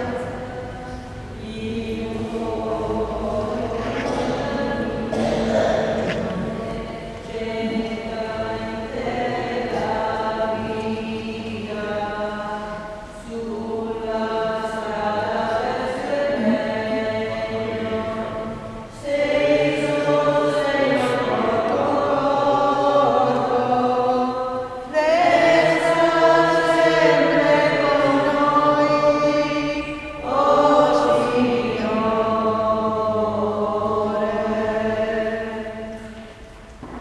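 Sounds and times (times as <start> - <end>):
church choir singing a hymn: 0.0 - 37.0.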